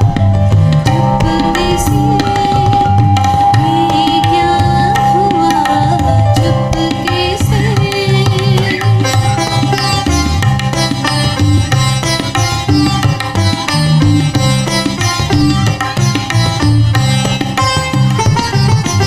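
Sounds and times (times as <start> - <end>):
sitar-like plucked melody: 0.0 - 19.0
tabla rhythm: 0.0 - 19.0
harmonium and keyboard: 3.0 - 19.0.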